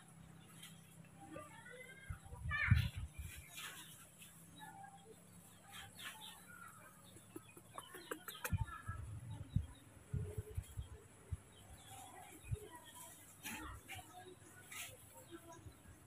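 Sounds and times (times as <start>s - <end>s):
bird clucking and chirping: 3.1s - 15.8s.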